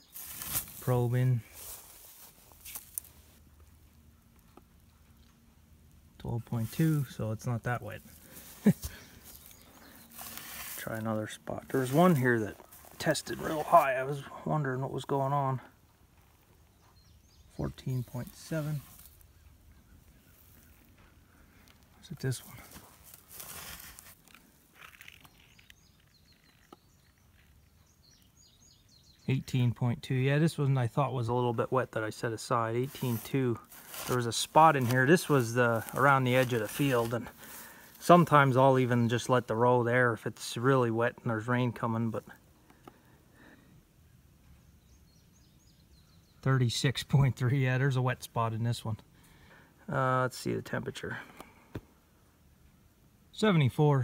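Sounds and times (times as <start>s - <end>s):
dry hay rustling and crackling: 0.0s - 4.4s, 6.4s - 7.2s, 7.8s - 14.2s, 17.9s - 19.4s, 21.6s - 27.3s, 32.8s - 38.4s
faint bird chirps: 16.3s - 22.6s, 24.8s - 29.7s.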